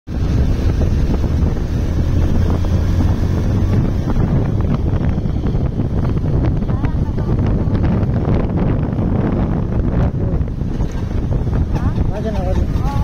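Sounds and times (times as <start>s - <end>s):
motorcycle engine low hum: 0.1s - 13.0s
wind rushing over microphone: 0.1s - 13.0s.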